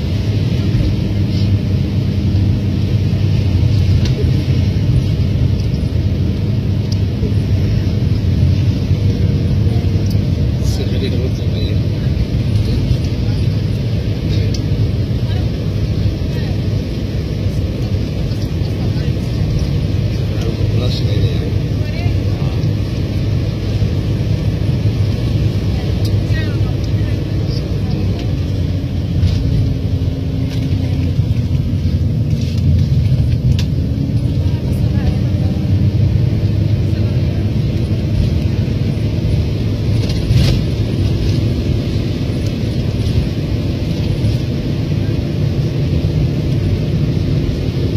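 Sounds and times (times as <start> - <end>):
car engine and road noise: 0.0 - 47.9.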